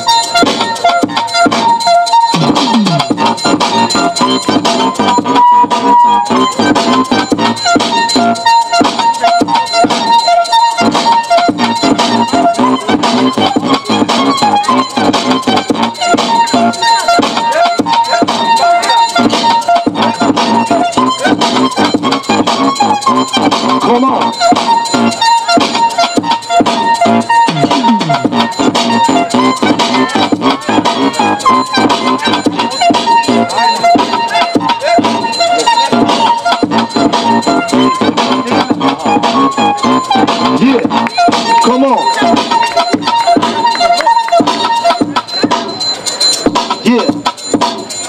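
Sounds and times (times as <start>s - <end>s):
hip-hop music over speakers: 0.0s - 48.0s.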